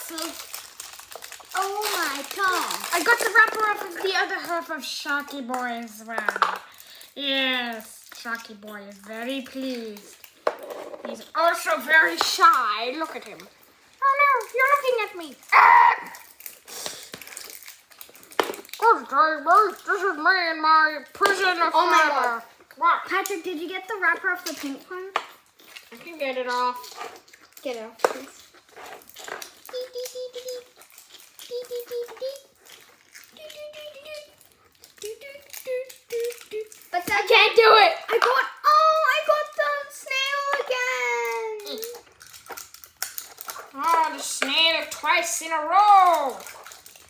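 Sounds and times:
plastic wrappers crinkling: 0.0s - 47.0s.

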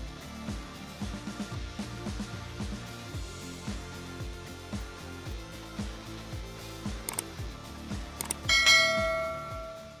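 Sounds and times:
background music with kick drum: 0.0s - 10.0s
quick clicks: 7.1s - 7.3s, 8.2s - 8.5s
notification bell chime: 8.5s - 10.0s.

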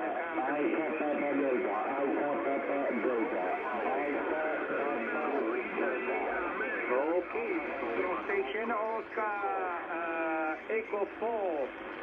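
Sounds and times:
radio voices calling over one another: 0.0s - 11.9s.

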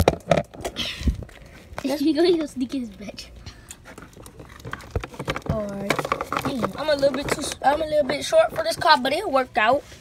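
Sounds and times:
plastic toy clicks and scrapes: 4.2s - 8.8s.

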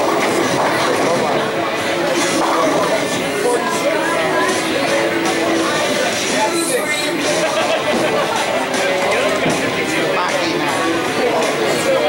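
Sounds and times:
bowling ball rolling: 0.0s - 12.0s
chatter of people: 0.0s - 12.0s.

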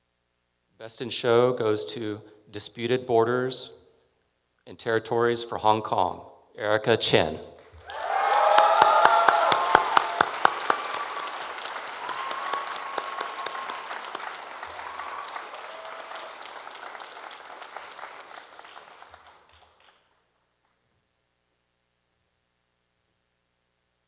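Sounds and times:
audience applauding: 7.6s - 20.2s.

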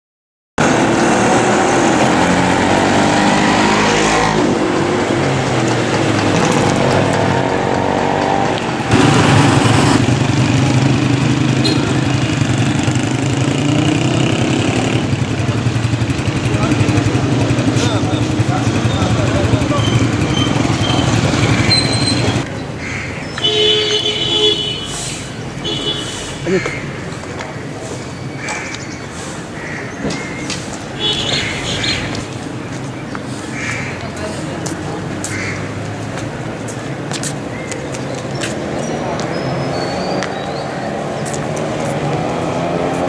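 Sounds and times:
road traffic engines: 0.6s - 43.0s
people's voices: 3.4s - 22.5s, 26.2s - 43.0s.

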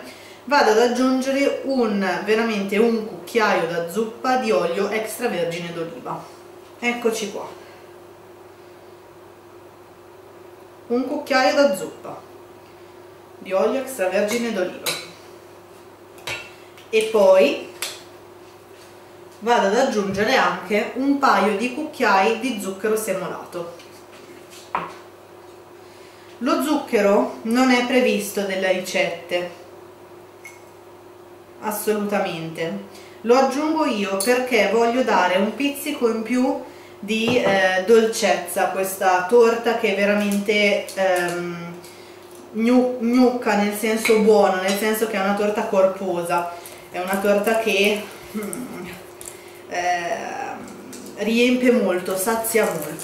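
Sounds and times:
faint steady hum: 0.0s - 53.0s
person speaking: 37.1s - 38.2s, 42.6s - 49.0s, 49.7s - 53.0s
glass jar knock: 37.3s - 37.6s.

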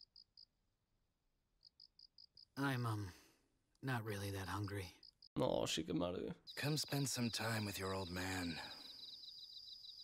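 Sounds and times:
cricket chirping: 0.0s - 0.6s, 1.6s - 3.0s, 4.2s - 5.4s, 6.4s - 10.0s.

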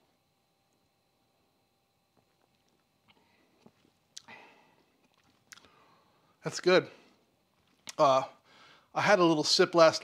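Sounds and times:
man sipping and swallowing: 2.2s - 6.0s, 7.5s - 8.0s.

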